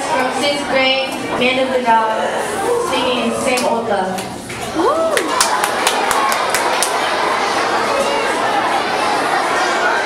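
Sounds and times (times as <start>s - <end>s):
crowd chatter: 0.0s - 10.0s
audience applauding and cheering: 4.8s - 7.8s
sharp claps: 5.2s - 7.0s.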